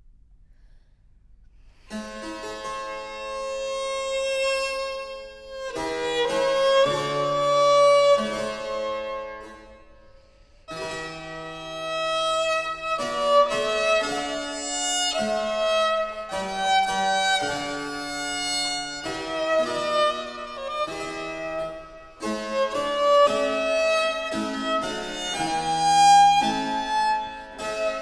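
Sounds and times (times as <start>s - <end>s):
bowed violin notes: 1.9s - 10.0s, 10.7s - 28.0s.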